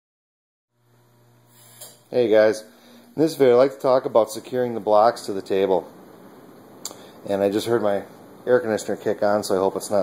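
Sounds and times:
low electrical hum: 0.7 - 10.0
room hiss: 0.8 - 10.0.

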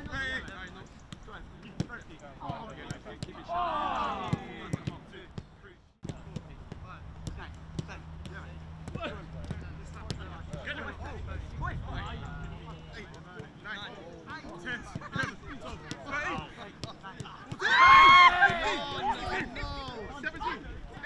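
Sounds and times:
players shouting: 2.4 - 5.1, 14.6 - 20.6.

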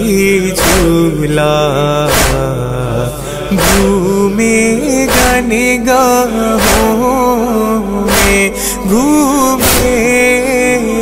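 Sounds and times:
man singing a lament: 0.0 - 11.0.

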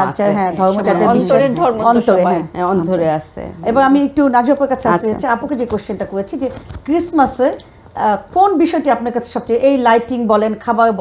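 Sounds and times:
woman speaking: 0.0 - 11.0
faint metallic jingle: 2.5 - 5.6.

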